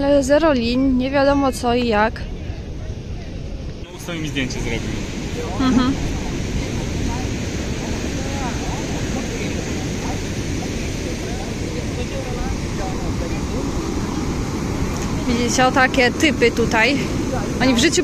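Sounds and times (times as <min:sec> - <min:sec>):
wind on microphone: 0:00.0 - 0:18.0
faint voices: 0:02.2 - 0:18.0.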